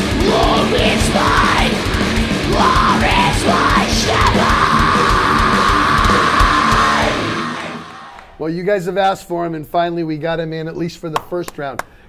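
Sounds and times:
thrash metal band playing: 0.0s - 8.1s.

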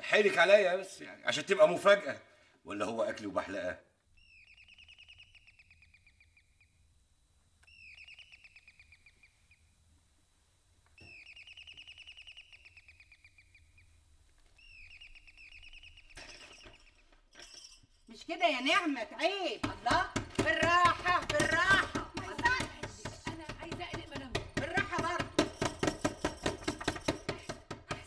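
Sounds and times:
songbird trilling: 4.0s - 16.9s.

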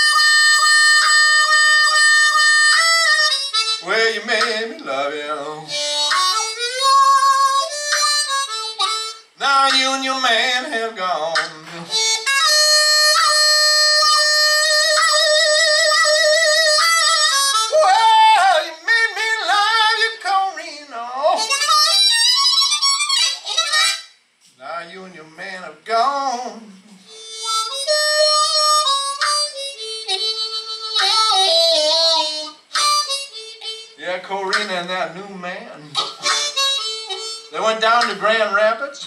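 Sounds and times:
harmonica holding a note: 0.0s - 24.6s, 26.7s - 38.8s
man singing falsetto holler: 3.8s - 7.7s, 9.4s - 26.8s, 33.6s - 39.0s.

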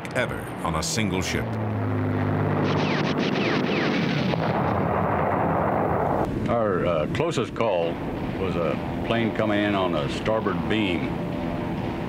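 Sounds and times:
low engine drone: 0.0s - 12.0s
short falling whines: 1.6s - 6.3s
anti-aircraft gunfire: 2.2s - 6.3s
explosions: 2.2s - 6.3s.

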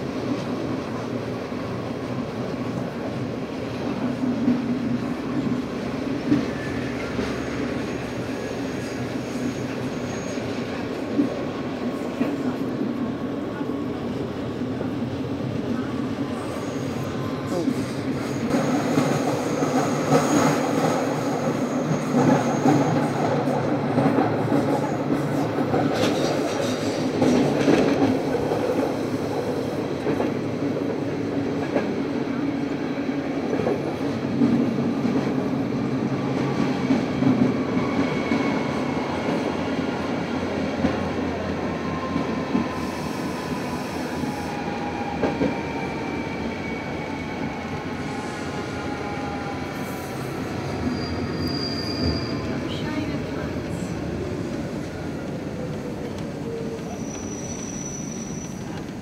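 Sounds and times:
train wheels rumbling on rails: 0.0s - 59.0s
high squeal: 7.9s - 10.6s, 41.9s - 52.6s, 56.8s - 58.8s.

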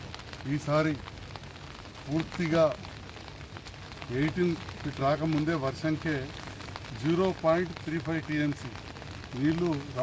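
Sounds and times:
rain pattering on umbrellas: 0.0s - 10.0s
man speaking: 7.0s - 10.0s.

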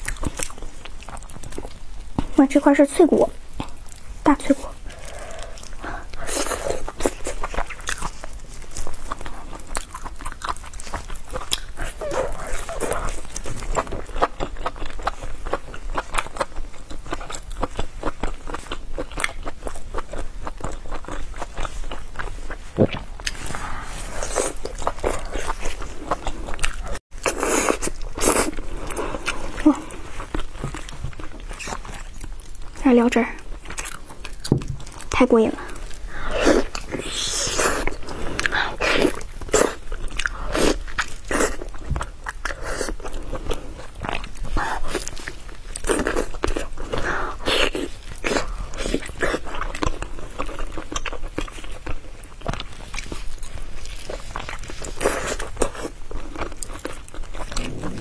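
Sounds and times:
biting and chewing meat: 0.0s - 2.4s, 3.4s - 58.0s.

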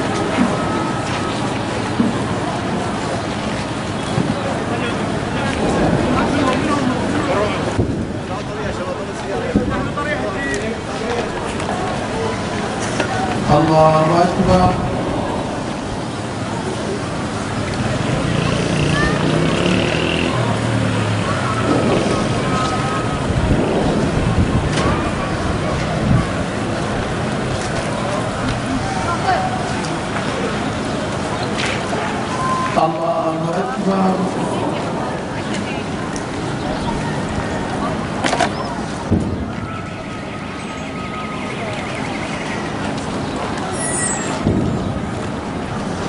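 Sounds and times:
wind rumbling on microphone: 0.0s - 32.6s, 33.6s - 46.0s
faint crowd voices: 0.0s - 46.0s.

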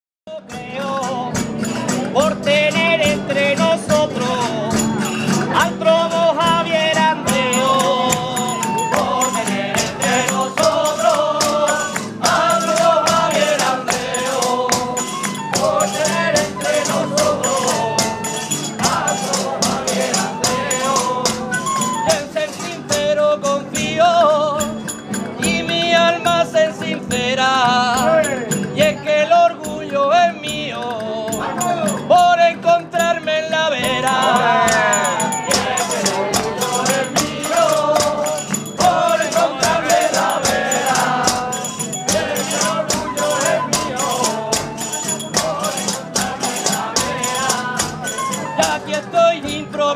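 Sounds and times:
percussion strikes: 0.4s - 49.9s
folk ensemble playing: 0.9s - 30.1s, 33.1s - 49.9s
tambourine strokes: 7.4s - 22.8s, 34.1s - 48.8s
wavering melody with vibrato: 34.0s - 49.0s.

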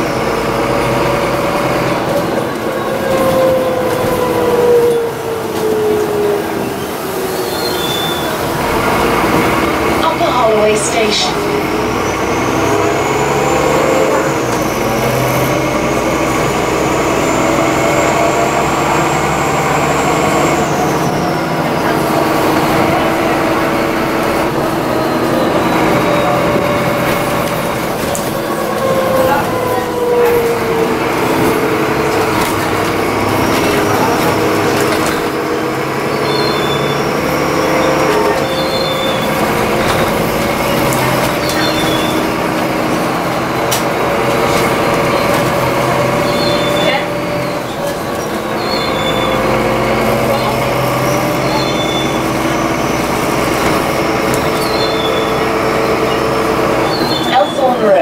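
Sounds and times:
bus engine whining: 0.0s - 58.0s
road noise rumble: 0.0s - 58.0s.

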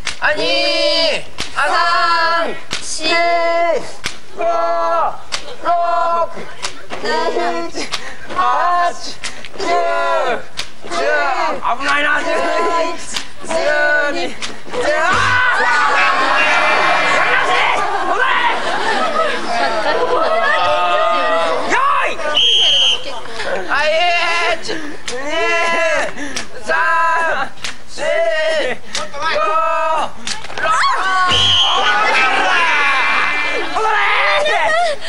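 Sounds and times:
group calling out in unison: 0.2s - 35.0s.

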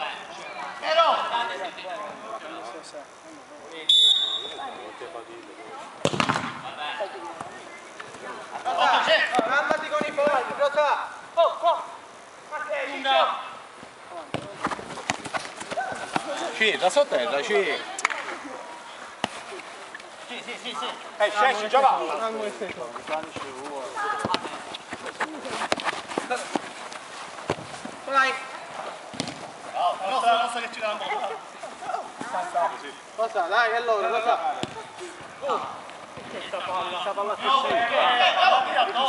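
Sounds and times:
men calling and shouting: 0.0s - 39.0s
football kicks: 6.0s - 7.6s, 14.2s - 16.4s, 23.2s - 26.8s, 27.4s - 27.9s, 29.1s - 29.6s, 34.5s - 34.9s.

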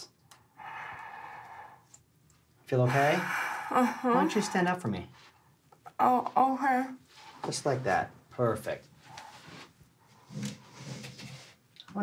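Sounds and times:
woman breathing deeply: 0.5s - 2.0s, 2.8s - 4.8s.

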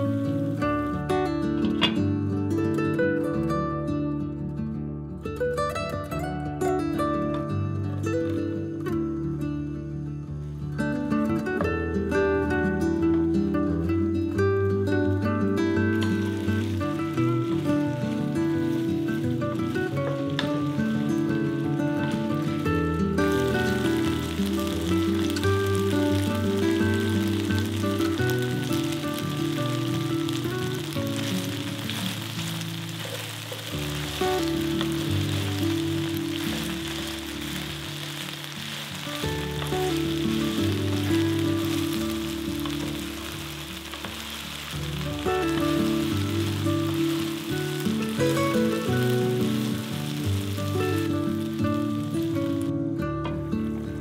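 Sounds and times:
okra sizzling in oil: 0.0s - 3.1s, 10.3s - 54.0s
background music: 0.0s - 54.0s.

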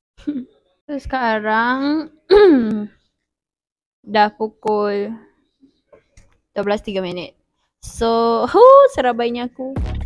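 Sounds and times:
woman clearing throat: 2.3s - 2.7s.

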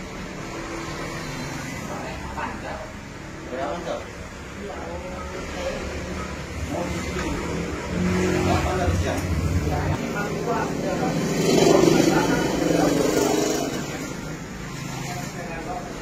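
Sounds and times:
motor vehicle passing by: 5.2s - 16.0s.

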